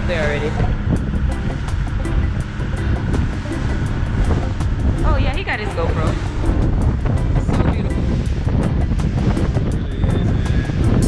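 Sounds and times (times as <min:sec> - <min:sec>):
boat engine rumble: 0:00.0 - 0:11.0
water rushing past: 0:00.0 - 0:11.0
wind buffeting microphone: 0:00.0 - 0:11.0
music with ticking beat: 0:00.7 - 0:11.0.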